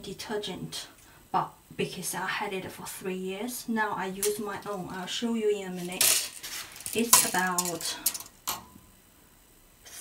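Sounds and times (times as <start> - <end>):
tape measure rattle: 5.8 - 8.4.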